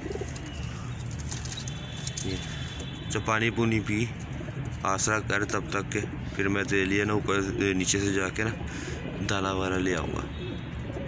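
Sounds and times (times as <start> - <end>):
pigeons cooing: 0.0 - 3.2, 4.2 - 11.0.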